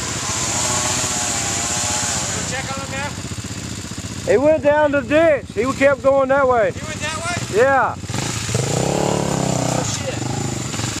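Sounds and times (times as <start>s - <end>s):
quad engines idling: 0.0s - 11.0s.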